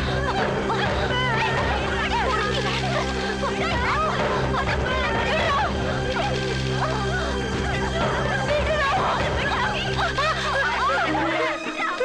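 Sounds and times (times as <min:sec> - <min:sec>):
people laughing and jeering: 0:00.0 - 0:12.0.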